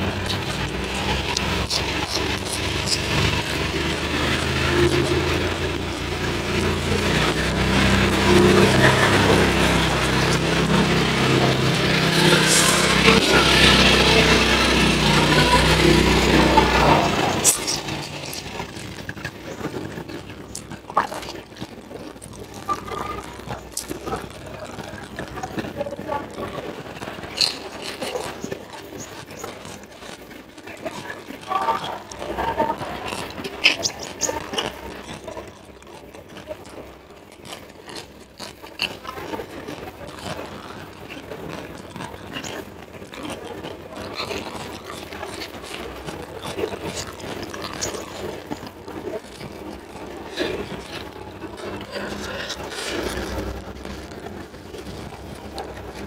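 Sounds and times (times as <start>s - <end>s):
chewing and mouth clicks: 0.0s - 56.0s.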